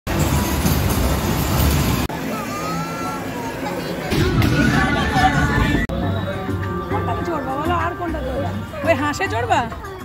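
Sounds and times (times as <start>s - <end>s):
roller coaster wheels rumbling on rails: 0.1s - 2.2s.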